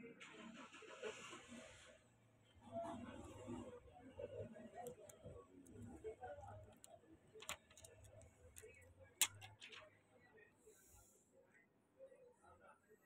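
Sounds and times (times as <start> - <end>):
plastic film clicks and crackles: 6.6 - 9.8.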